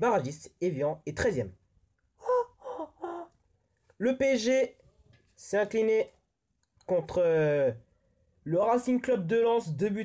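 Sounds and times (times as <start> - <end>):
person's voiced syllables: 2.2 - 3.4.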